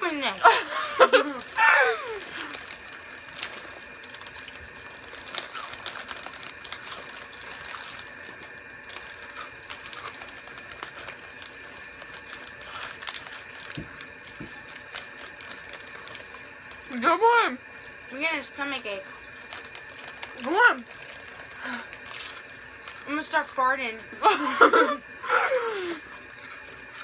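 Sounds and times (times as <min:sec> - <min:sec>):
snack bags crinkling: 0:00.0 - 0:27.0
crunchy snack being chewed: 0:01.1 - 0:17.0, 0:19.1 - 0:24.1, 0:25.4 - 0:27.0.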